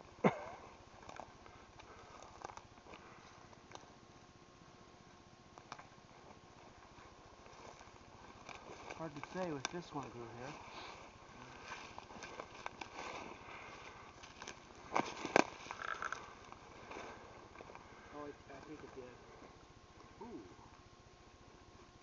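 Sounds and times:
twigs crackling: 0:00.7 - 0:04.0, 0:05.5 - 0:20.1
footsteps through undergrowth: 0:06.1 - 0:18.0
brush rustling: 0:06.1 - 0:19.6.

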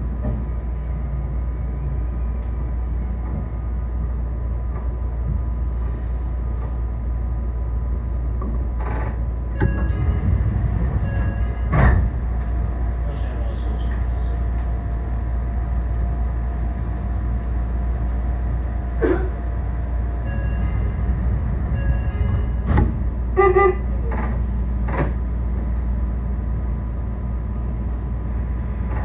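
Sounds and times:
electric train rumble and hum: 0:00.0 - 0:29.0.

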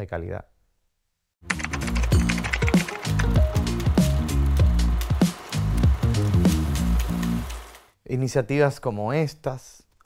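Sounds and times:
typing clicks: 0:01.5 - 0:04.0
deep bass notes sliding down: 0:03.1 - 0:07.5.

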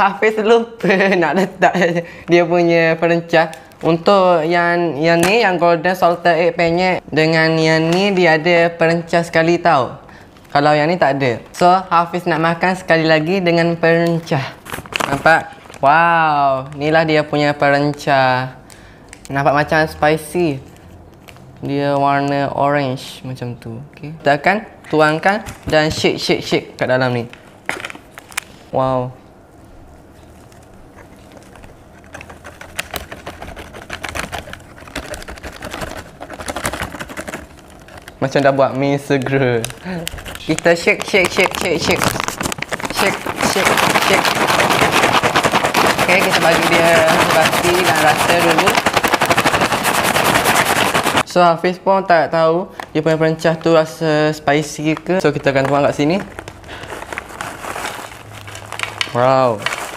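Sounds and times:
plastic packaging crinkling: 0:14.1 - 0:18.1, 0:27.2 - 0:28.7, 0:30.0 - 0:51.3, 0:53.5 - 0:59.9
powder pouring into bag: 0:39.6 - 0:51.3.

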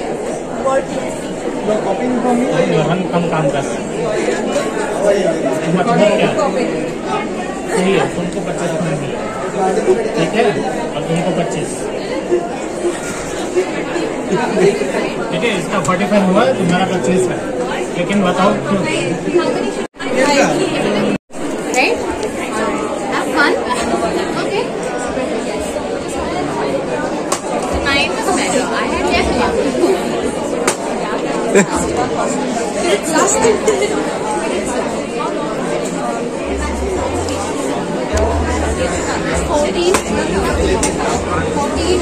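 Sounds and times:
crowd chatter: 0:00.0 - 0:42.0.

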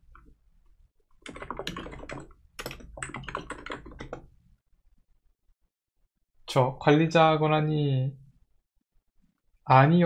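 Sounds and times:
typing on computer keyboard: 0:01.2 - 0:04.3.

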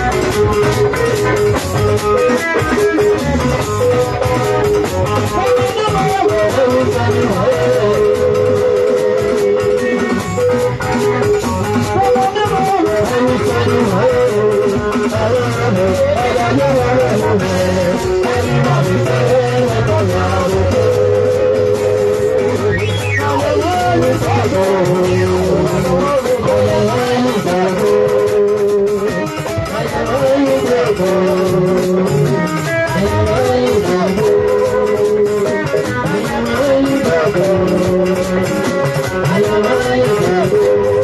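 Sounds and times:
bass line: 0:00.0 - 0:41.0
drum beat: 0:00.0 - 0:41.0
electric guitar melody: 0:00.0 - 0:41.0.

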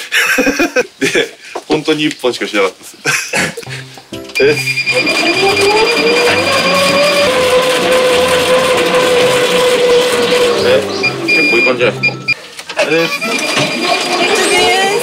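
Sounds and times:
high electronic tone: 0:04.4 - 0:15.0
exercise bike flywheel whine: 0:04.8 - 0:15.0.

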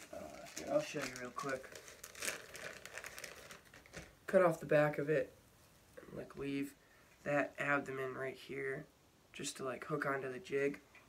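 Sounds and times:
plastic packaging crinkling: 0:00.0 - 0:04.2.

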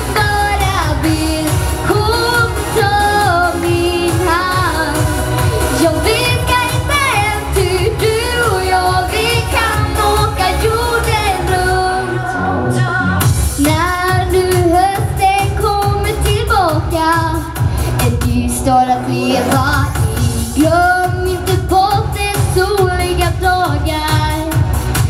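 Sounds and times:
backing music with beat: 0:00.0 - 0:25.0
girl singing a pop song: 0:00.0 - 0:25.0.

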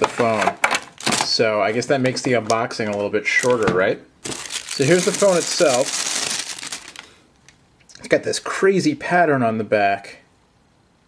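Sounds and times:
plastic packaging crinkling: 0:04.2 - 0:07.2.

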